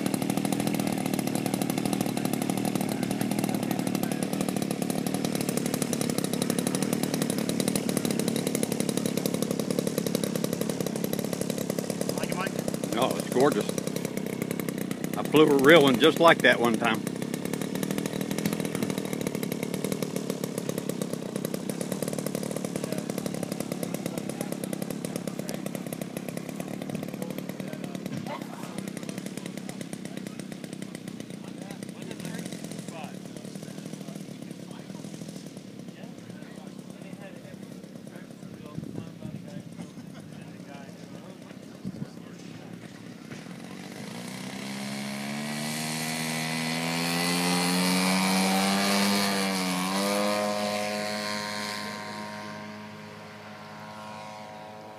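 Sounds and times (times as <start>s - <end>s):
model airplane engine and propeller: 0.0s - 54.9s.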